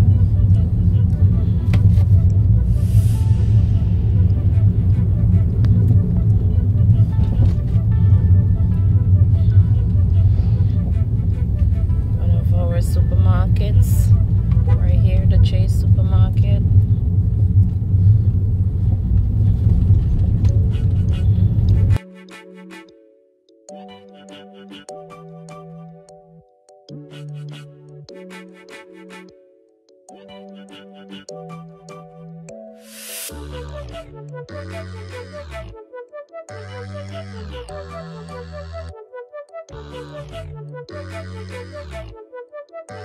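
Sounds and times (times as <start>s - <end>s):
road and engine rumble: 0.0s - 22.0s.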